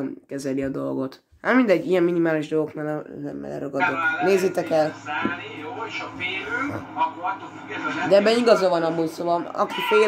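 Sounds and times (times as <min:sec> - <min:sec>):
speech from television speaker: 0:00.0 - 0:10.0.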